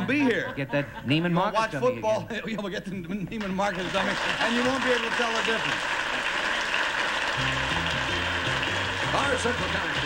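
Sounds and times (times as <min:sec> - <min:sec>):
audience applause: 0:03.6 - 0:10.0
game show theme music: 0:07.3 - 0:10.0.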